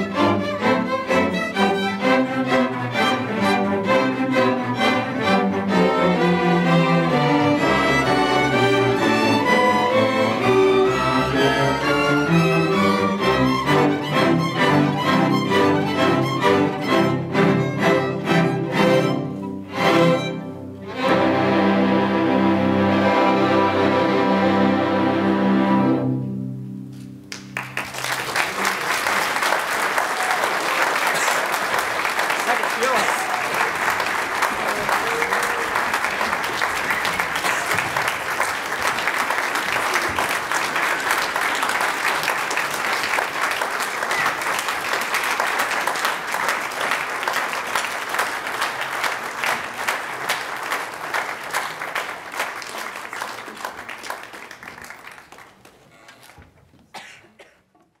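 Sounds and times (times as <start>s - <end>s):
audience applauding: 27.3s - 56.5s.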